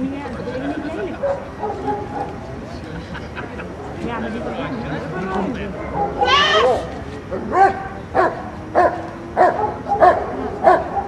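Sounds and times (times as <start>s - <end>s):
people talking: 0.0s - 11.0s.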